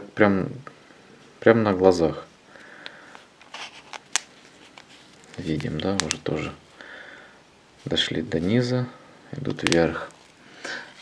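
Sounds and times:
plastic cup crackling: 3.4 - 6.5, 9.5 - 10.4.

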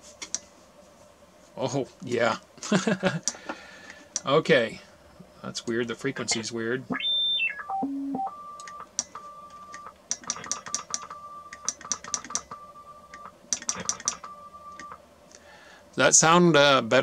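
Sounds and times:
keyed pure tone: 6.2 - 15.0
sharp clicks: 8.6 - 15.0.

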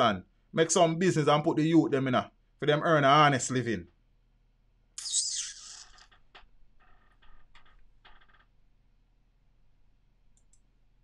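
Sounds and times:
faint low hum: 6.0 - 11.0.

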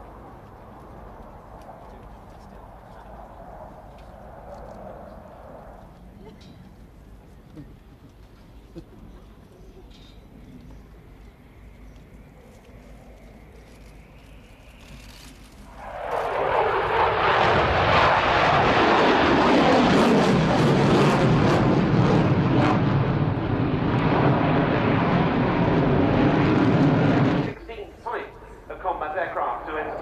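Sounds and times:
jet roar: 0.0 - 6.6, 11.4 - 30.0.

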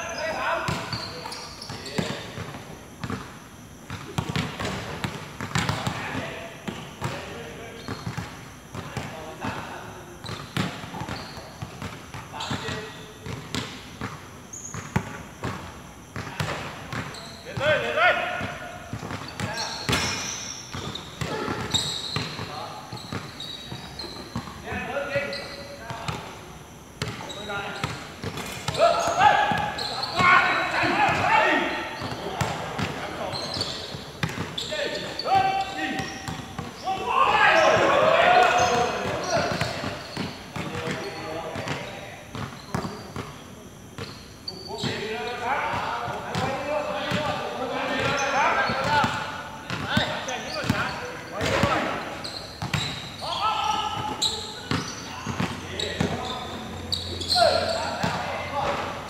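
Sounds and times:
basketball bouncing on court: 0.6 - 7.2, 7.8 - 17.2, 18.4 - 24.6, 27.0 - 44.2, 47.9 - 56.6
players shouting: 36.8 - 39.8, 53.2 - 56.3, 57.2 - 58.8.

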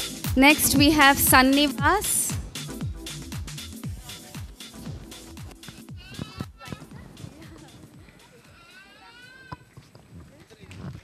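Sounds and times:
background chatter: 3.8 - 11.0.

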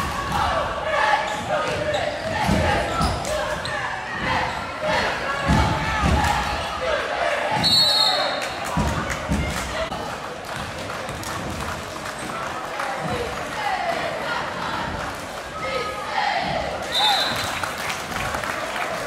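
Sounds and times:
voices echoing in a hall: 0.0 - 19.0
sneakers squeaking: 1.2 - 4.8
referee's whistle: 7.6 - 8.4, 16.8 - 17.6.

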